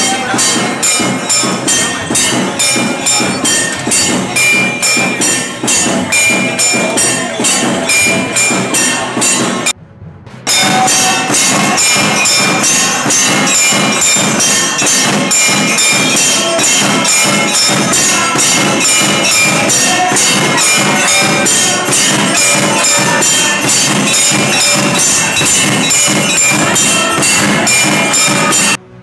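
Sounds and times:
bells and cymbals struck rhythmically: 0:00.0 - 0:09.8, 0:10.5 - 0:28.8.

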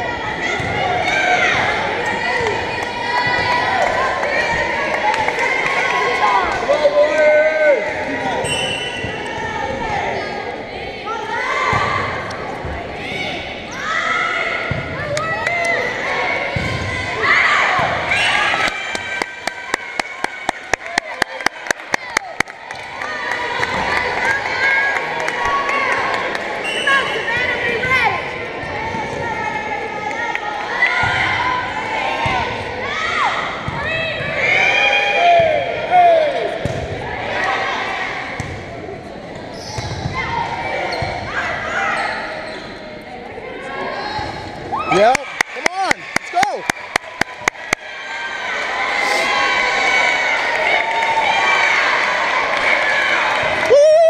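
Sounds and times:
volleyball bouncing on gym floor: 0:36.6 - 0:37.0.

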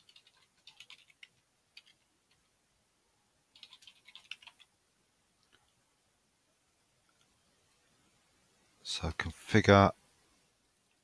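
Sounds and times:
typing on computer keyboard: 0:00.0 - 0:02.5, 0:03.5 - 0:04.7.

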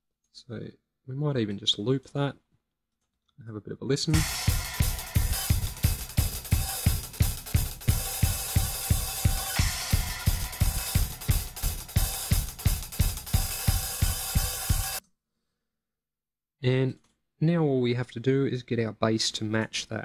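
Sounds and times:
drum kit groove: 0:04.1 - 0:15.0.

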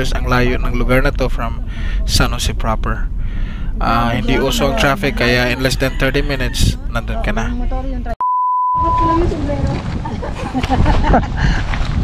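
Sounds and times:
outdoor voices chatting: 0:00.0 - 0:08.2
high-pitched electronic beep: 0:08.2 - 0:09.2.

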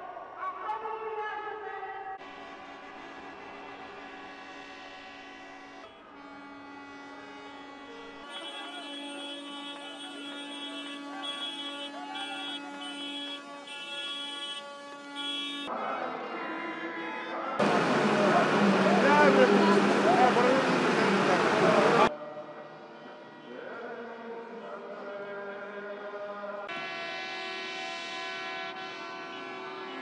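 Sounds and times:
tractor horns blaring: 0:02.2 - 0:15.7, 0:16.8 - 0:22.1, 0:26.7 - 0:30.0.

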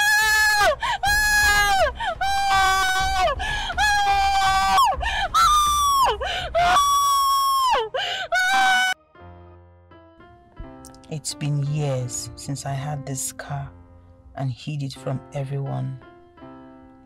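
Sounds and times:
woman screaming and wailing: 0:00.0 - 0:09.0.

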